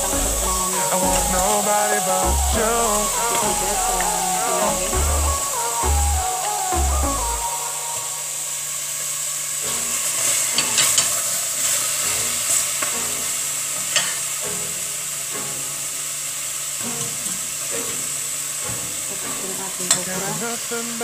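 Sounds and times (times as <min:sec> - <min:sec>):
vegetables sizzling in a pot: 0:07.8 - 0:21.0.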